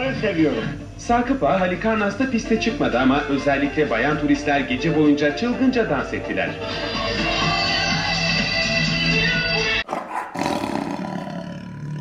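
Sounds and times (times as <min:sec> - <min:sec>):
big cat roaring: 0:09.9 - 0:12.0.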